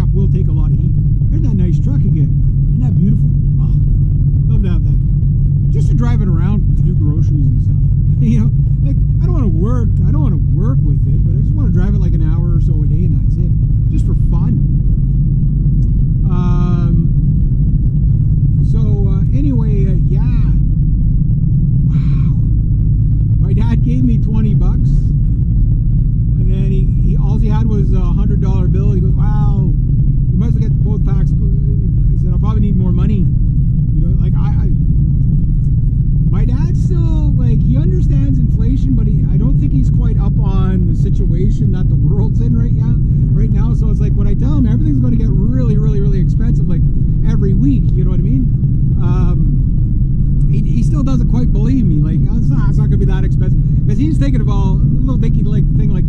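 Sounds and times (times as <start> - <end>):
man talking: 0.0 - 5.0, 5.7 - 14.7, 16.2 - 17.2, 18.6 - 20.6, 21.9 - 22.6, 23.4 - 25.2, 26.4 - 34.8, 36.3 - 49.7, 50.4 - 56.0
car road and engine rumble: 0.0 - 56.0.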